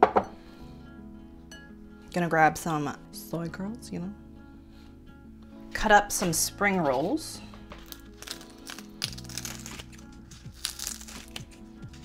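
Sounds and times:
kitchenware clinking: 0:00.0 - 0:00.4
quiet background music: 0:00.0 - 0:12.0.

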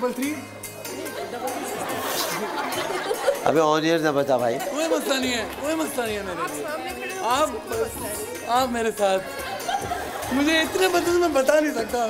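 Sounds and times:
audience chatter in a large hall: 0:00.0 - 0:12.0.

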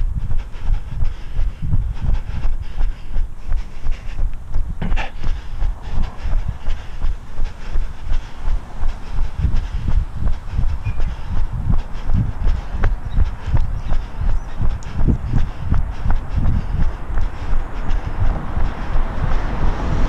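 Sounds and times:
footsteps on asphalt: 0:00.0 - 0:20.0
wind rumble on microphone: 0:00.0 - 0:20.0.

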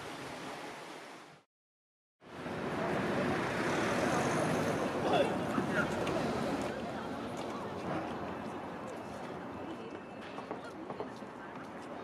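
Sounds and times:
road traffic hiss: 0:02.3 - 0:08.0.

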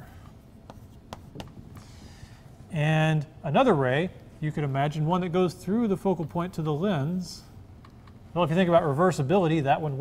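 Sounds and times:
chalk tapping: 0:00.6 - 0:01.6.

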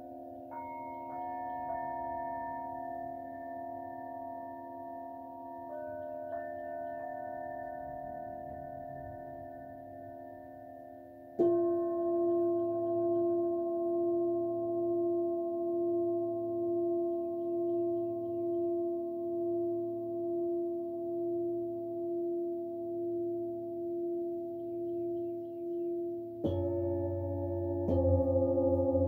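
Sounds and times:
metal singing bowl ringing: 0:00.0 - 0:29.0
deeper singing bowl struck: 0:11.4 - 0:29.0.

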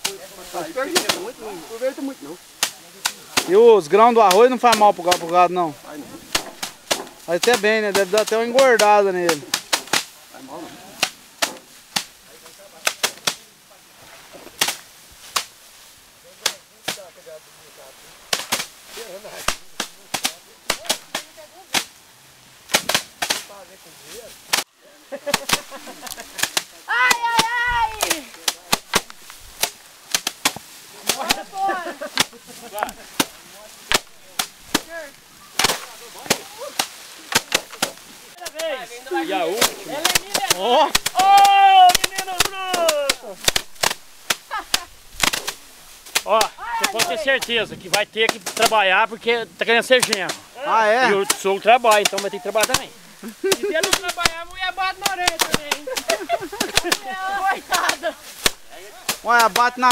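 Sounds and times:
rice sheaves thwacking wooden bench: 0:00.8 - 0:01.4, 0:02.5 - 0:05.5, 0:06.2 - 0:10.2, 0:11.0 - 0:12.2, 0:12.8 - 0:13.5, 0:14.6 - 0:15.6, 0:16.4 - 0:17.1, 0:18.3 - 0:18.8, 0:19.4 - 0:21.9, 0:22.7 - 0:23.6, 0:24.5 - 0:38.9, 0:39.5 - 0:48.9, 0:49.9 - 0:50.4, 0:51.1 - 0:59.9
voices calling out: 0:16.1 - 0:59.9.

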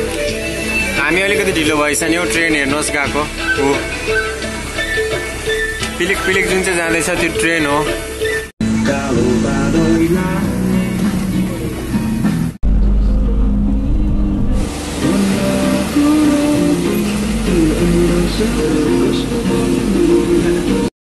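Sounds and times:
melodic music: 0:00.0 - 0:12.4, 0:14.5 - 0:20.9
bus engine rumble: 0:00.0 - 0:20.9
road noise: 0:00.0 - 0:20.9.

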